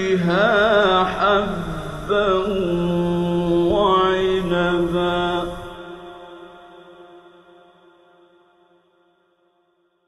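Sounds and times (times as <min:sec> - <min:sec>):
man chanting melodically: 0:00.0 - 0:07.8
echo of voice: 0:00.0 - 0:09.0.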